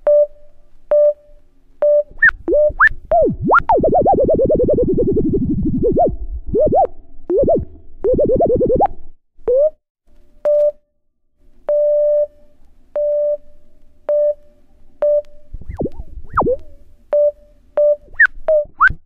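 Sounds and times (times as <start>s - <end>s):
short synthesizer blips: 2.1s - 9.8s, 15.1s - 16.8s
rising synthesizer sweeps: 2.5s - 8.9s.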